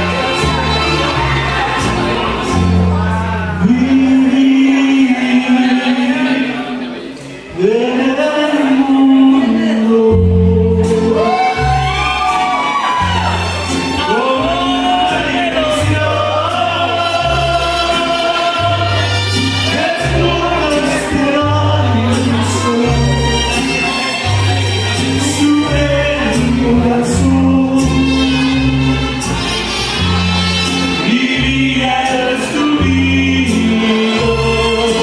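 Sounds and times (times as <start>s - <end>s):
man singing into a microphone: 0.0s - 35.0s
mariachi-style accompaniment: 0.0s - 35.0s.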